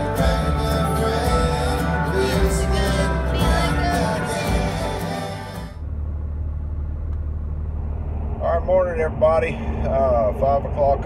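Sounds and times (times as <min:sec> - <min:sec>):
live band music: 0:00.0 - 0:05.7
vehicle cab rumble: 0:00.0 - 0:11.0.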